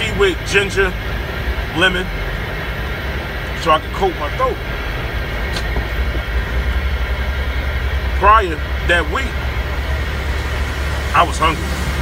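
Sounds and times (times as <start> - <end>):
truck engine rumbling in cab: 0.0 - 12.0.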